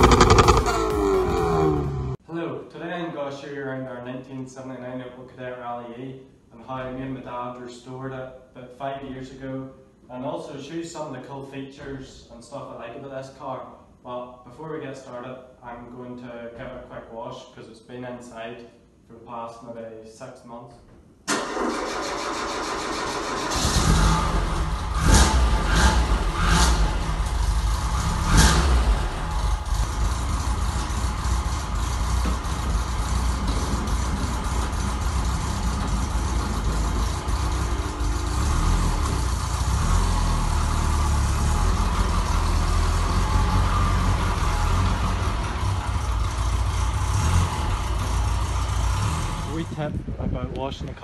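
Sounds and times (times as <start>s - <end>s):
car engine idling: 0.0s - 2.2s, 23.5s - 49.8s
car pulling away: 0.0s - 2.2s, 21.3s - 49.8s.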